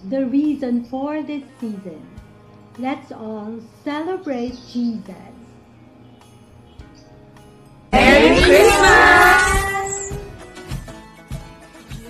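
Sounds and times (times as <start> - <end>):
women cheering: 8.0 - 10.3.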